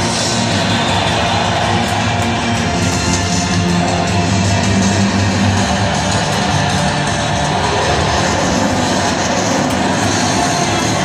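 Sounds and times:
large crowd noise: 0.0s - 11.0s
loud guitar music over speakers: 0.0s - 11.0s.

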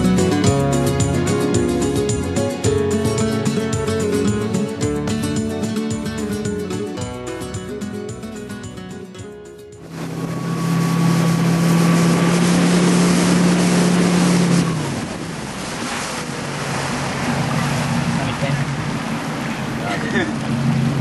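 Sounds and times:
wind: 0.0s - 21.0s
motorboat engine droning: 9.7s - 21.0s
water spray rushing: 9.8s - 21.0s.

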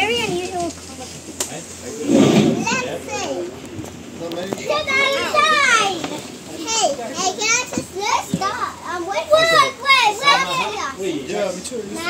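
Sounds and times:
children talking and calling out: 0.0s - 1.3s, 2.5s - 3.8s, 4.5s - 11.2s, 11.8s - 12.0s.

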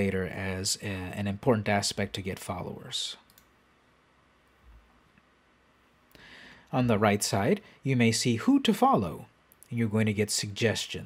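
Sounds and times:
faint computer mouse clicks: 3.3s - 3.5s.

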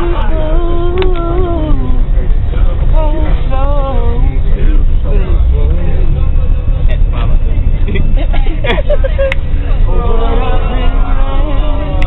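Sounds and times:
bus engine and road noise: 0.0s - 12.0s
scattered voices: 0.0s - 12.0s
singing: 9.9s - 12.0s.

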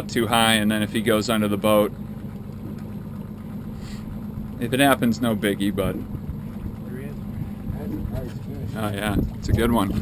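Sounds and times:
outboard motor idling: 0.0s - 10.0s.

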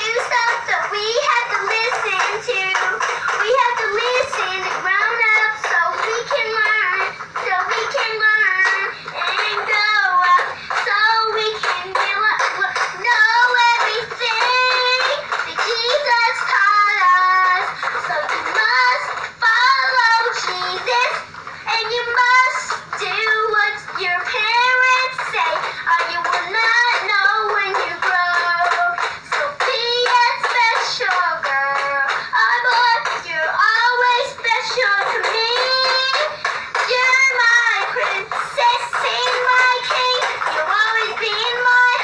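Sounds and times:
girl singing: 0.0s - 42.0s
toy guitar electronic music: 0.0s - 42.0s.

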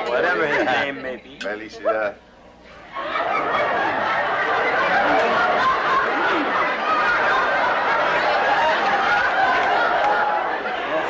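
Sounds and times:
overlapping voices talking: 2.8s - 11.0s.

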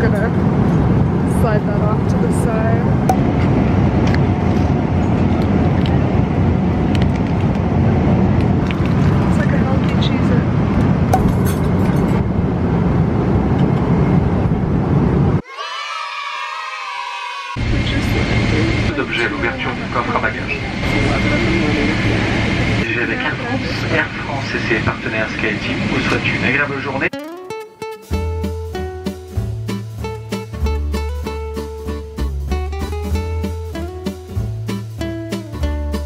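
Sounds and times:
airliner cabin rumble: 0.0s - 15.4s, 17.6s - 27.1s
steady low hum: 17.6s - 26.7s.

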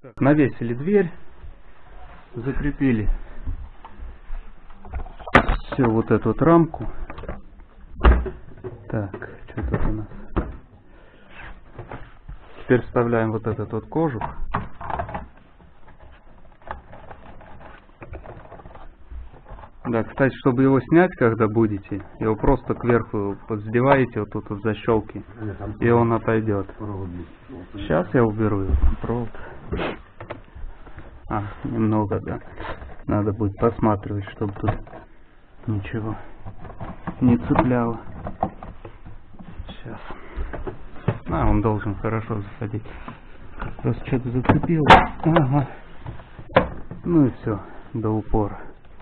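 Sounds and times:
plastic clicks and knocks: 13.6s - 19.8s, 36.4s - 39.6s, 44.4s - 47.1s
plastic rustle: 14.9s - 23.8s.

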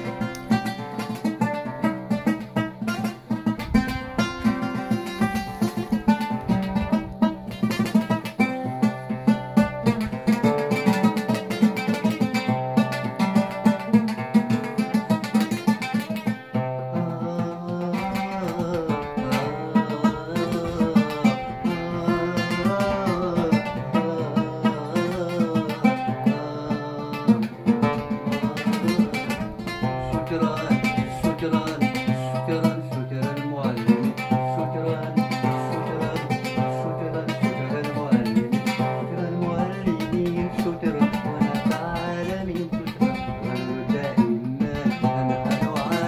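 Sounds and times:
oud plucked: 0.0s - 46.0s.

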